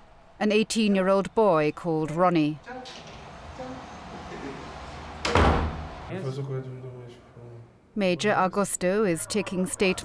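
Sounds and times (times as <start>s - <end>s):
wooden door shutting with thud: 5.2s - 5.9s.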